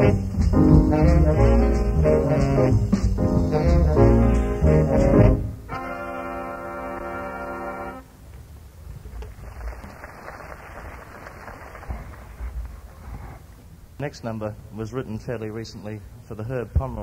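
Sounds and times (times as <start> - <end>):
jazz band horns: 0.0 - 8.1
tape hiss: 0.0 - 17.0
audience applause: 9.1 - 13.0.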